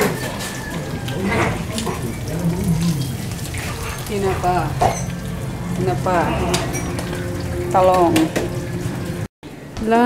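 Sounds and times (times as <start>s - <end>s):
fish sizzling in hot oil: 1.7s - 9.2s.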